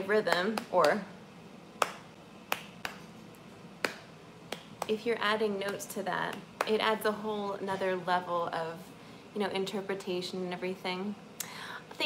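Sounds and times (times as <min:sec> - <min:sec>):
sharp finger snaps: 0:01.8 - 0:03.1, 0:03.8 - 0:05.0.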